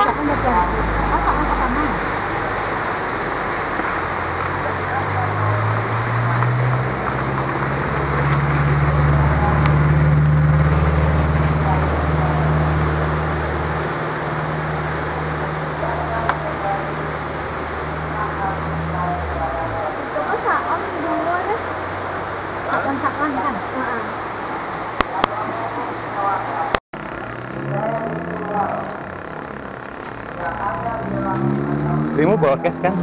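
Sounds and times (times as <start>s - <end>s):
people chattering: 0.0s - 3.3s, 4.3s - 13.7s, 25.0s - 33.0s
engine humming: 0.0s - 33.0s.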